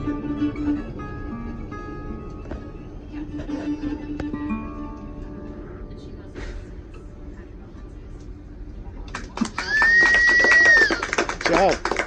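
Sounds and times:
audience applause and cheering: 9.3 - 12.0
loud steady whistle: 9.6 - 11.0
short whoop: 9.6 - 11.0.

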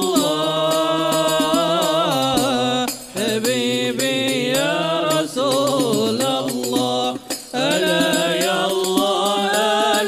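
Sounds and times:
devotional singing: 0.0 - 10.0
frame drums: 0.0 - 10.0.

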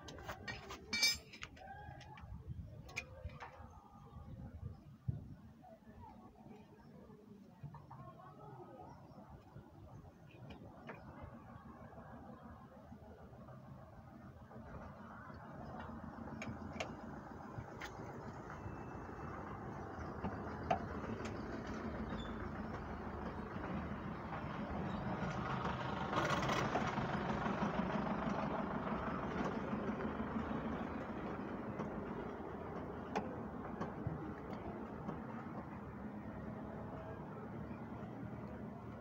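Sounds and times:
vehicle engine noise: 10.5 - 39.0.

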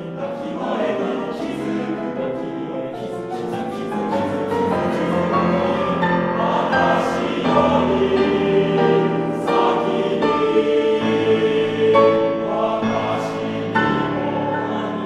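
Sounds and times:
male choir singing: 0.0 - 15.0.

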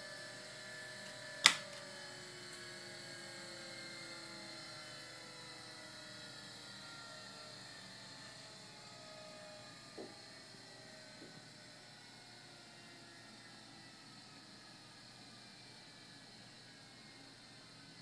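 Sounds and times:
gyroscope whines falling in pitch: 0.0 - 18.0.

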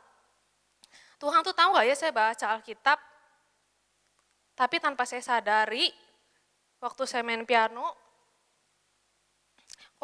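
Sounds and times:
woman speaking: 1.2 - 3.3, 4.6 - 6.2, 6.8 - 8.2.

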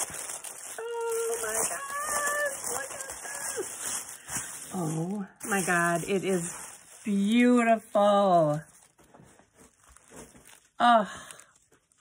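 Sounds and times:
tissue paper rustling: 0.0 - 12.0
woman speaking: 0.8 - 3.6, 4.7 - 8.7.

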